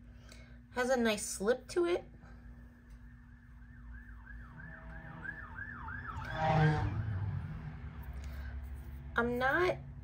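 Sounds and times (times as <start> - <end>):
emergency siren yelping: 3.1 - 7.7
low rumble: 4.4 - 8.6.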